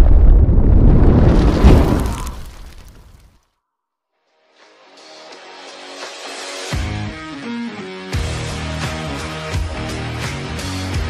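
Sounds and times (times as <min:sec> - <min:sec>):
deep rumbling explosion: 0:00.0 - 0:03.2
fiery crackle: 0:00.0 - 0:03.4.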